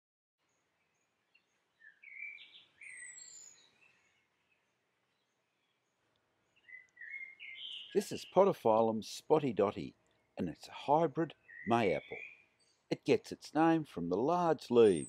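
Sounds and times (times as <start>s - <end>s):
birds chirping and whistling: 1.8s - 4.2s, 6.6s - 8.4s, 11.3s - 12.8s.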